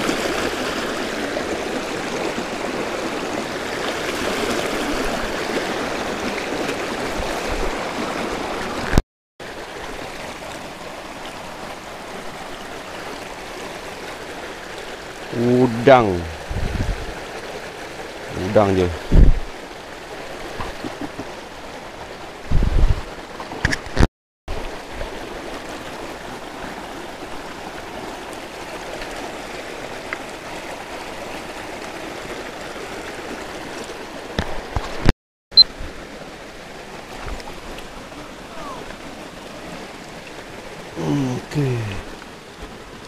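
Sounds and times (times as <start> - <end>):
stream running over stones: 0.0 - 43.0.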